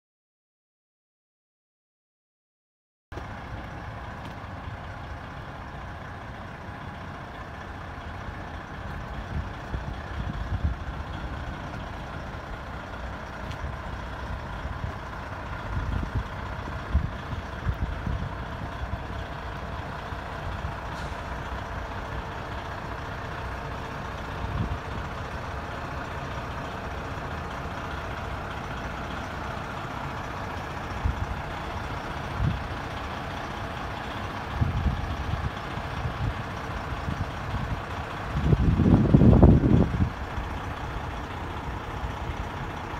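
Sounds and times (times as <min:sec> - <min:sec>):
fire engine idling: 0:03.1 - 0:42.9.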